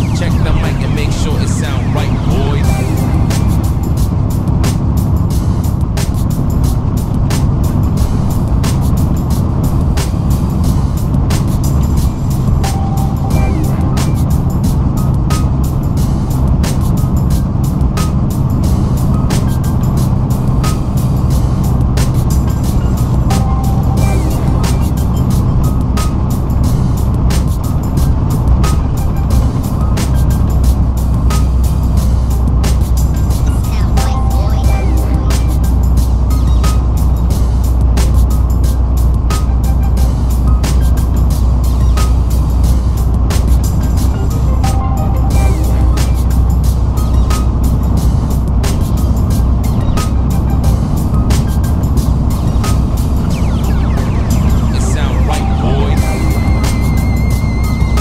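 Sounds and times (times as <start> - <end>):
music with steady beat: 0.0 - 58.0
truck engine running: 0.0 - 58.0.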